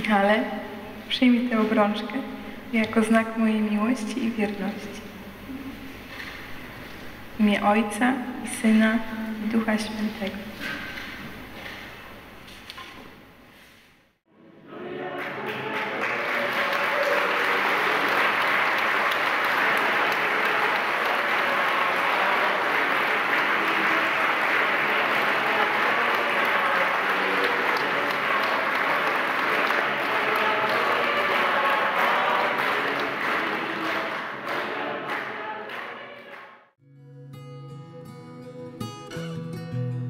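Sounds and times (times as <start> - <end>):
crowd applauding: 15.0 - 36.6.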